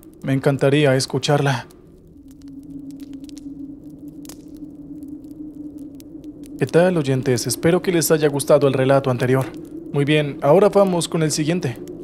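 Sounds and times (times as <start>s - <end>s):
faint crackles: 0.0s - 12.0s.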